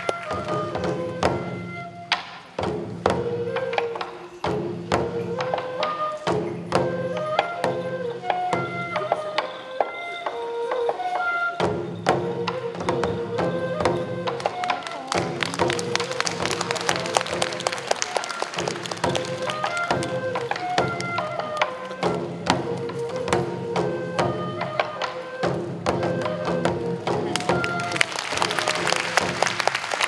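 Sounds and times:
taiko drums beating: 0.0 - 9.4, 11.6 - 30.0
folk melody with held notes: 0.0 - 29.8.

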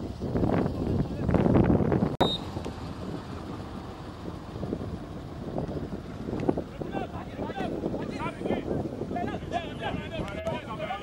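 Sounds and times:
wind rumbling on microphone: 0.0 - 11.0
distant voices calling out: 2.4 - 11.0.

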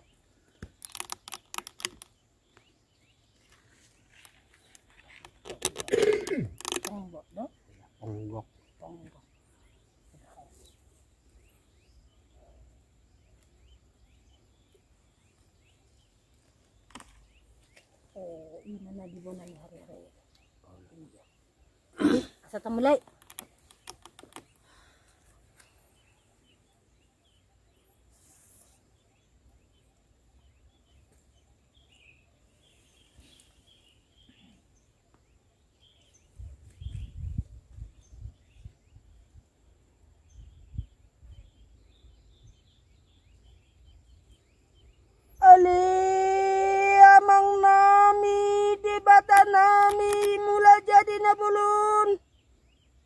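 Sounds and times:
woman chanting a prayer: 45.4 - 52.2.

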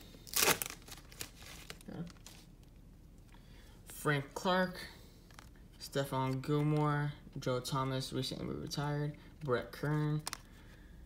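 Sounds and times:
wrapper tearing and crinkling: 0.0 - 2.5.

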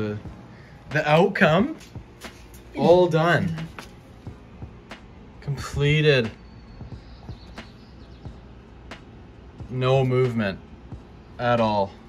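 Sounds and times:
low background ambience: 0.0 - 12.0.

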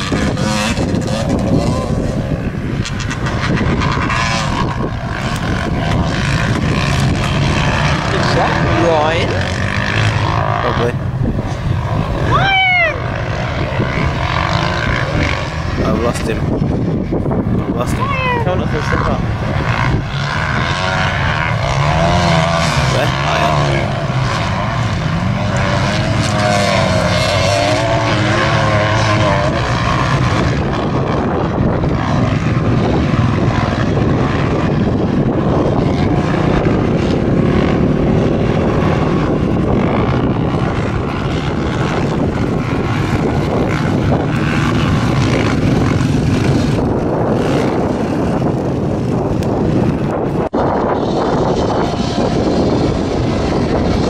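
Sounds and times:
dirt bike engines revving: 0.0 - 54.0
wind noise on microphone: 0.0 - 54.0.

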